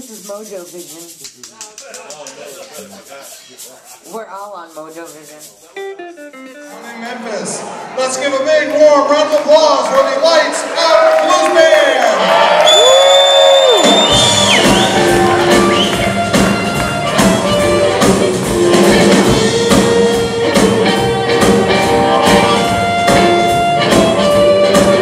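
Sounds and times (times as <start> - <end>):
blues band playing: 0.0 - 25.0
harmonica: 13.8 - 25.0.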